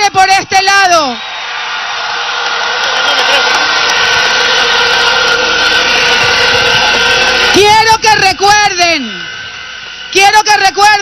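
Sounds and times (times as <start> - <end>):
large crowd cheering: 0.0 - 11.0.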